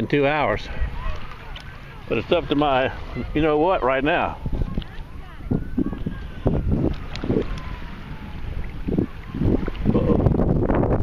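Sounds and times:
water sloshing: 0:00.0 - 0:11.0
wind rumbling on microphone: 0:00.0 - 0:11.0.

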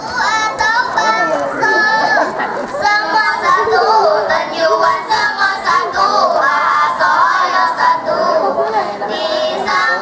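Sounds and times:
children singing: 0:00.0 - 0:10.0
girl singing into microphone: 0:00.0 - 0:10.0.

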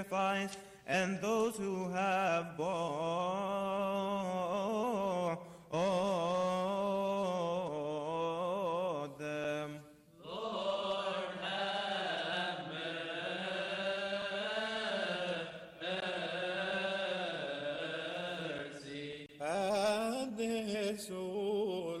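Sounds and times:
man chanting: 0:19.4 - 0:22.0.

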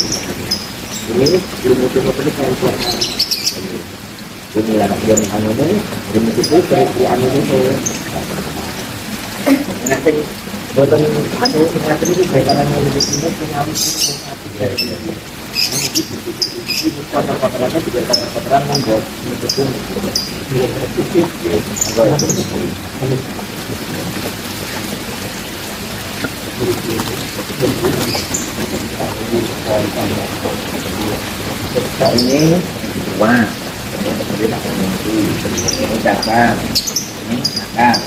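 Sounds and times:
falling water hiss: 0:00.0 - 0:38.0
murmured voices: 0:00.0 - 0:38.0
songbird chirping: 0:00.0 - 0:38.0.

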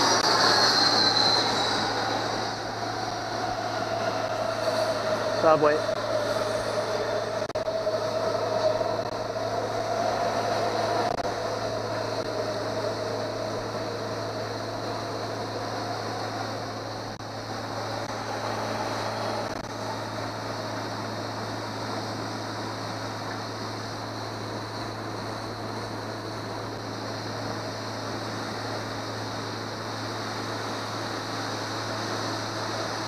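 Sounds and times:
train crossing bridge hum: 0:00.0 - 0:33.0
water noise: 0:00.0 - 0:33.0.

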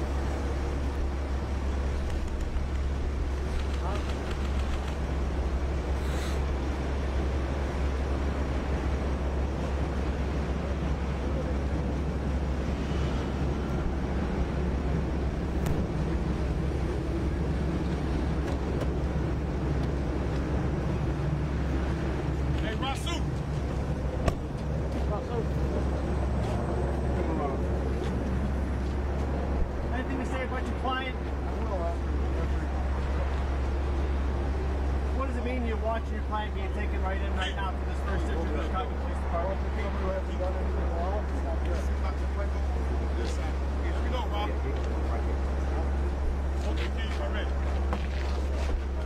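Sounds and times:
low rumble of vehicles: 0:00.0 - 0:49.0
sharp clicks: 0:02.0 - 0:05.0.

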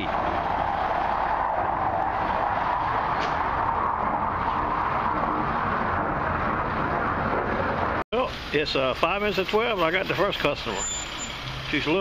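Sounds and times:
outdoor rushing hum: 0:00.0 - 0:12.0.

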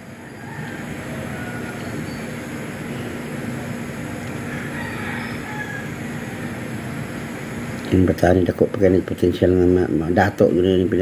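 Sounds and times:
background hum: 0:00.0 - 0:11.0.

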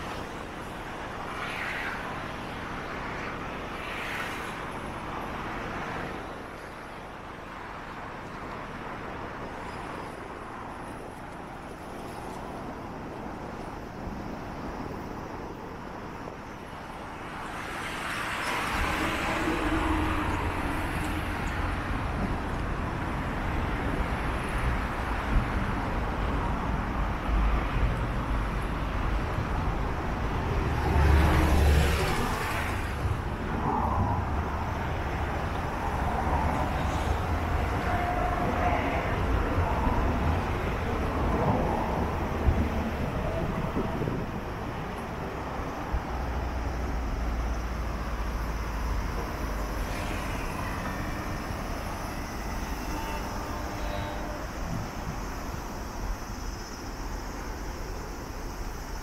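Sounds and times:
vehicles passing: 0:00.0 - 0:59.0.

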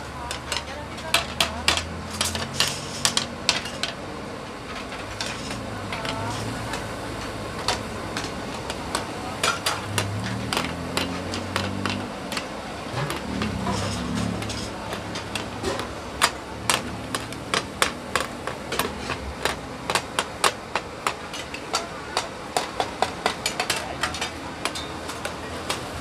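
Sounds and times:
rush of gas burners: 0:00.0 - 0:26.0
metal utensils scraping pans: 0:00.1 - 0:04.0, 0:04.6 - 0:26.0.

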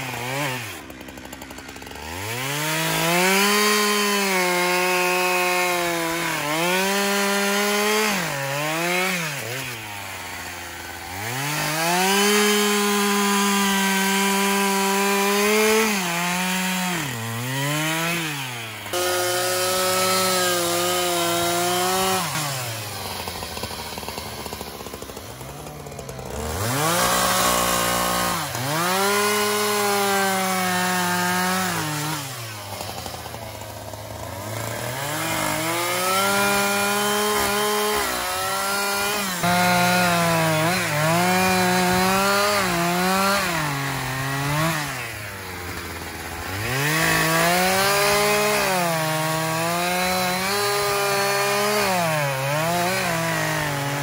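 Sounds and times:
chainsaw cutting logs: 0:00.0 - 0:54.0
chainsaw idling and revving: 0:00.0 - 0:54.0.

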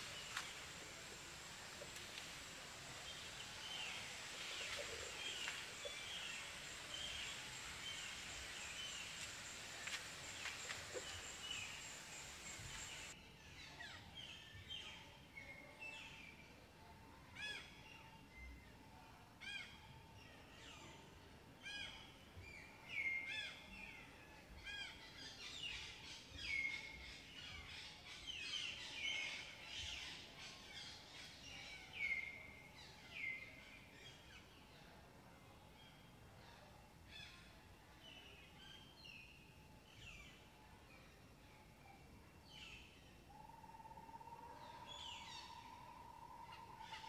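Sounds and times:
forest birds chirping: 0:00.0 - 0:16.3, 0:21.6 - 0:35.0, 0:35.7 - 0:47.0.

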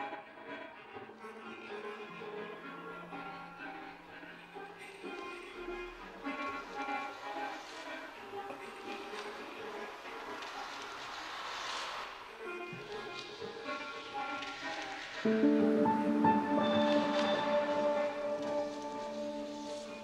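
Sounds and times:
ambient piano music: 0:14.6 - 0:20.0.

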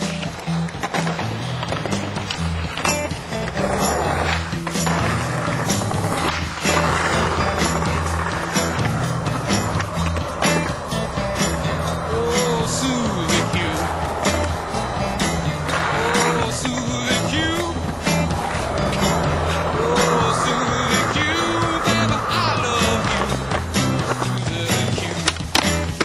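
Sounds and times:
music with steady bass line: 0:00.0 - 0:26.0
skateboard wheels rolling on concrete: 0:00.0 - 0:26.0.

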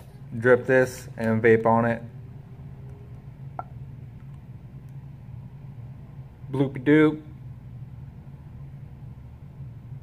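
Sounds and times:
low room hum: 0:00.0 - 0:10.0
glass dropper and bottle clicks: 0:03.6 - 0:03.8.

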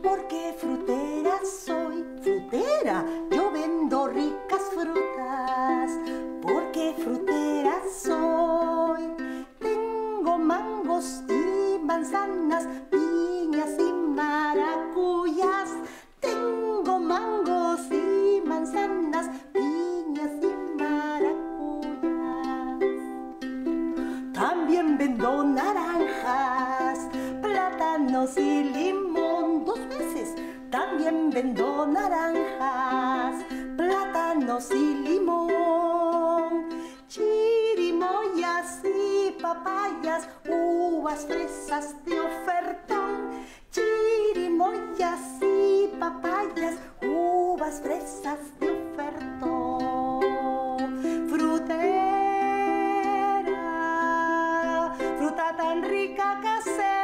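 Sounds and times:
ukulele strumming: 0:00.0 - 0:57.0
woman singing: 0:00.0 - 0:57.0.

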